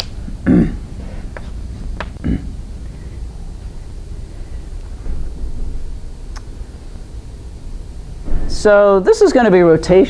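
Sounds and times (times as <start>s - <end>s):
low rumbling room noise: 0.0s - 10.0s.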